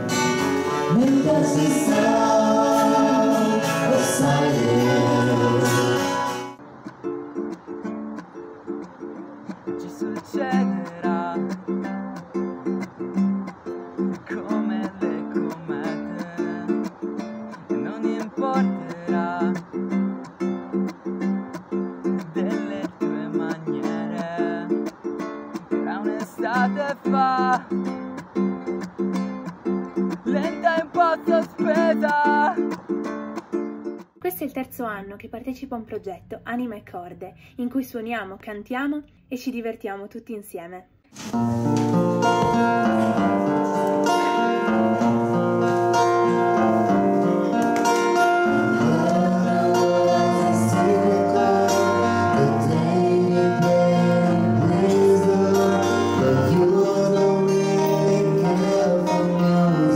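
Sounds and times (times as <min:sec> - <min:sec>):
person singing: 0:00.0 - 0:06.6, 0:09.6 - 0:13.3, 0:13.9 - 0:21.3, 0:22.0 - 0:28.0, 0:29.9 - 0:32.8, 0:42.2 - 0:59.9
plucked ukulele chords: 0:00.0 - 0:34.2, 0:41.2 - 0:59.9.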